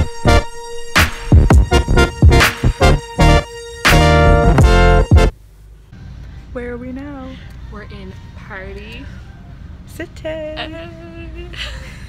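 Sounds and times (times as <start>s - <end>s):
low steady background rumble: 5.2s - 12.0s.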